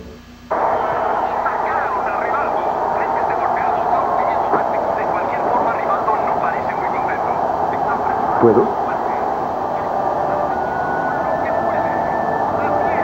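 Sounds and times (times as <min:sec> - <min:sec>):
large crowd din: 0:00.5 - 0:13.0.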